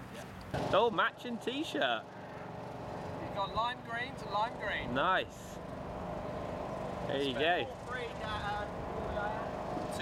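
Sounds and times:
quiet voices talking: 0:03.0 - 0:10.0.

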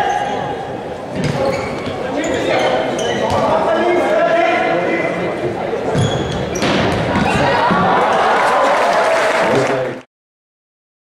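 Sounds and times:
voices of players: 0:00.0 - 0:10.0.

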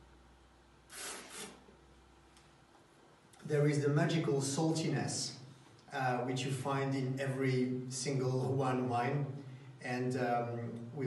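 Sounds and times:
person slurping wine: 0:00.9 - 0:01.7.

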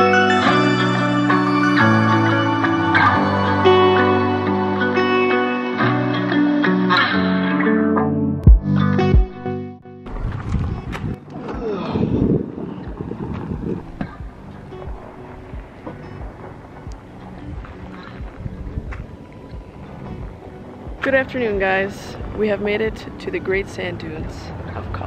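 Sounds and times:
guitar music: 0:00.0 - 0:11.4, 0:12.6 - 0:25.0
low rumbles: 0:10.0 - 0:25.0
wind gusting over microphone: 0:10.1 - 0:24.7.

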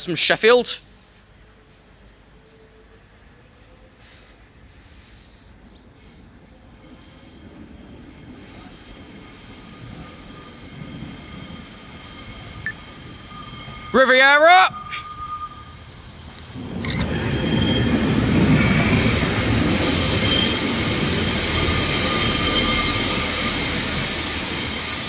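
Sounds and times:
diesel train rumble: 0:03.8 - 0:25.0
wheels squealing on rails: 0:04.0 - 0:25.0.

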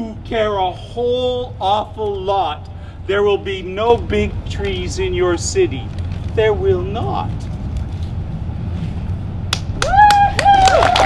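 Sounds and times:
audience clapping: 0:09.5 - 0:11.0
high drawn-out cheers: 0:09.8 - 0:11.0.

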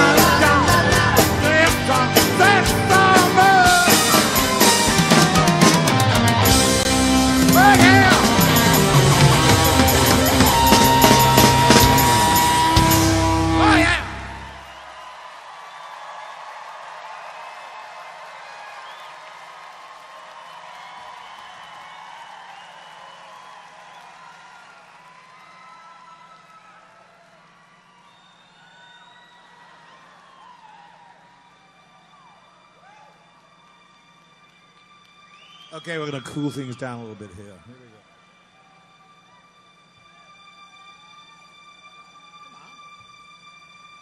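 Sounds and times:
live rock band playing: 0:00.0 - 0:14.6
crowd cheering and whistling: 0:00.0 - 0:37.2.

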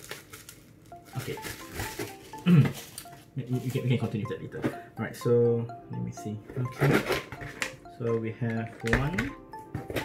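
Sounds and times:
bubble wrap crinkling: 0:00.0 - 0:03.0
light background music: 0:00.9 - 0:10.0.

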